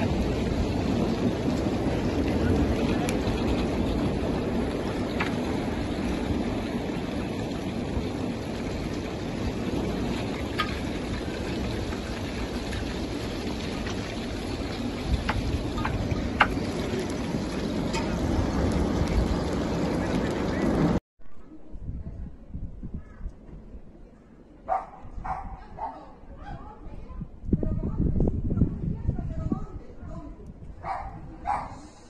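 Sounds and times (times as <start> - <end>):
lava flow cracking: 0.0 - 21.0
wind buffeting microphone: 0.0 - 21.0, 21.6 - 24.0, 24.7 - 32.0
dog barking: 24.7 - 26.6, 30.8 - 31.9.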